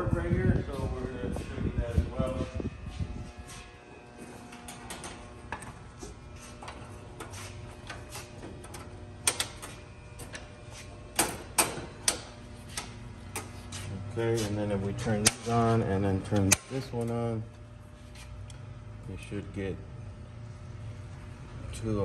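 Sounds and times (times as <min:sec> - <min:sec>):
electrical unit hum: 0:00.0 - 0:22.0.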